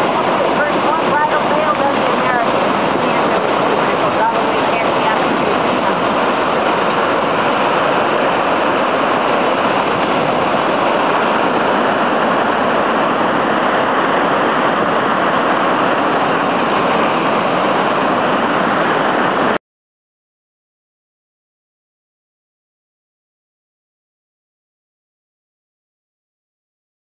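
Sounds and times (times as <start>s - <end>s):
waterfall rushing onto rocks: 0.0s - 19.6s.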